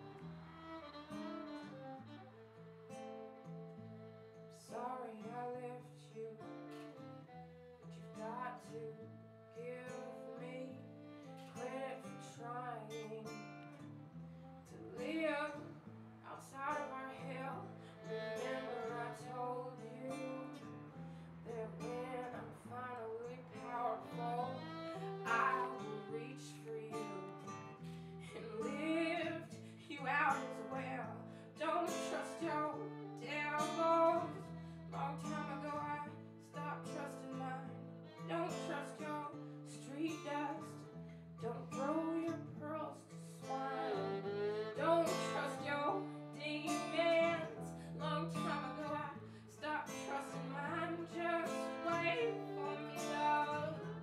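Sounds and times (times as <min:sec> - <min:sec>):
bowed violin: 0:00.0 - 0:54.0
person singing: 0:21.4 - 0:37.7, 0:41.4 - 0:54.0.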